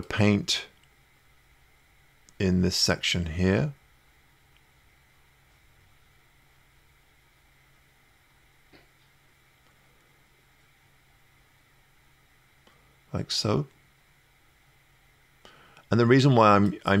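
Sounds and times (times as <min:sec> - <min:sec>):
low steady hum: 0:00.0 - 0:17.0
faint click: 0:04.5 - 0:04.7.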